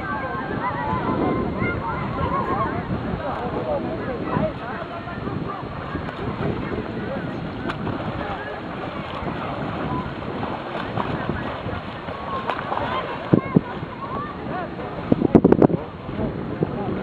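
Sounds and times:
distant overlapping voices: 0:00.0 - 0:16.9
wind buffeting microphone: 0:00.0 - 0:17.0.

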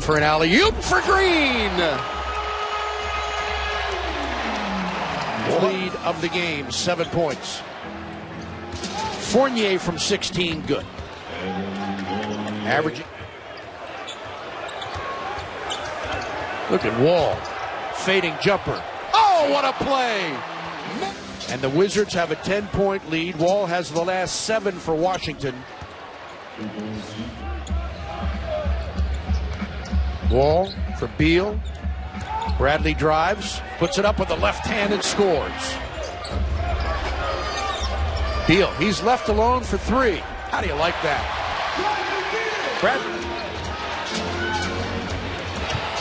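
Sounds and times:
arena crowd noise: 0:00.0 - 0:46.0
crowd hubbub: 0:11.0 - 0:16.8, 0:40.7 - 0:46.0.

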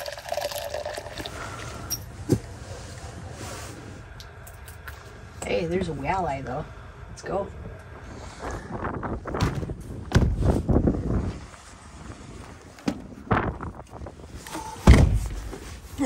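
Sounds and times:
heavy thump: 0:09.3 - 0:10.7, 0:14.8 - 0:15.6.

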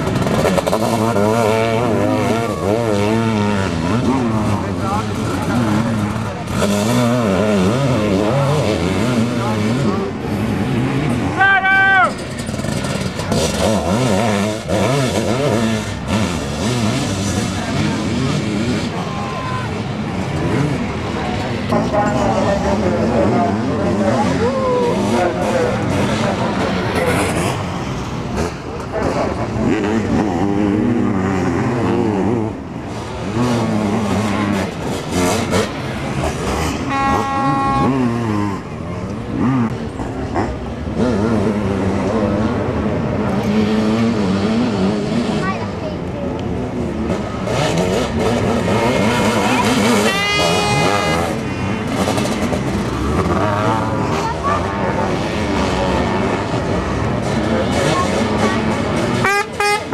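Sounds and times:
motocross engines revving: 0:00.0 - 0:59.9.

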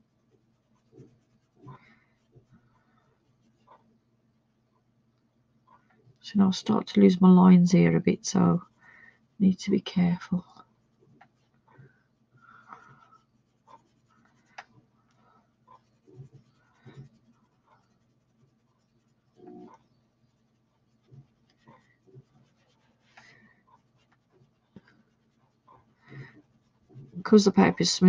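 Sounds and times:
sponge rubbing on paper: 0:00.0 - 0:03.7, 0:12.5 - 0:28.0.

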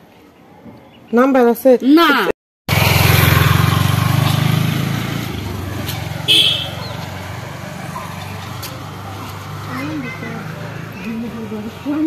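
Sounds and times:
motorcycle engine pulling away: 0:02.7 - 0:11.5.

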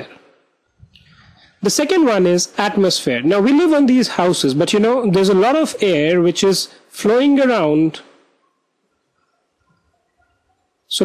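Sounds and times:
man speaking: 0:00.0 - 0:00.2, 0:01.6 - 0:08.2.

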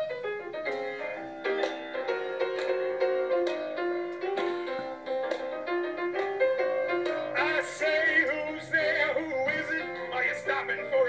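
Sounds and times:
grand piano playing jazzy chords: 0:00.0 - 0:11.0.

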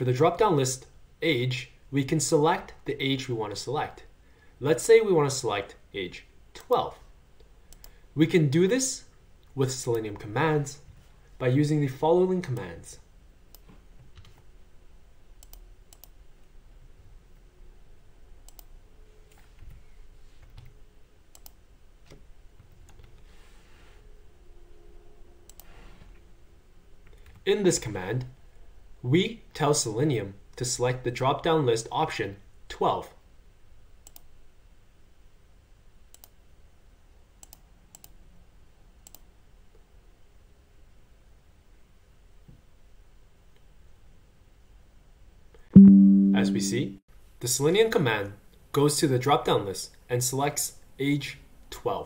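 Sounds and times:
low room hum: 0:00.0 - 0:52.0
computer mouse clicks: 0:15.4 - 0:16.2, 0:18.5 - 0:18.7, 0:20.4 - 0:22.2, 0:25.5 - 0:25.7, 0:34.0 - 0:34.3, 0:36.1 - 0:36.4, 0:37.4 - 0:38.2, 0:39.0 - 0:39.2.

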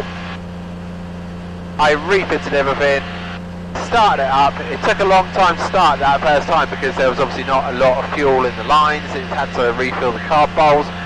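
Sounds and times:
light aircraft engine droning: 0:00.0 - 0:11.0.

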